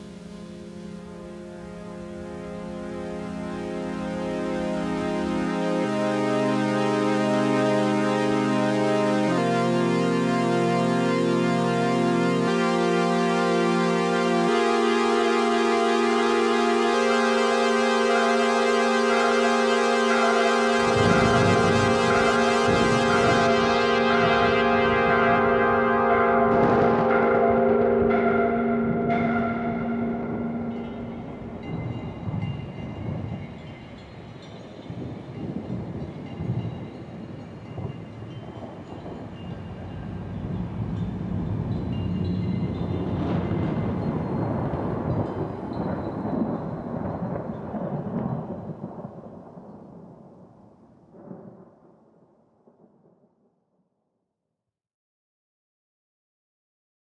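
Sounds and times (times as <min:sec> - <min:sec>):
sustained chord of held tones: 0:00.0 - 0:47.9
rolling thunder rumble: 0:20.0 - 0:52.1.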